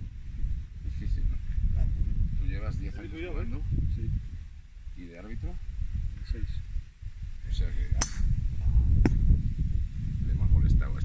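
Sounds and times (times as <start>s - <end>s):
golf club striking ball: 7.9s - 8.4s.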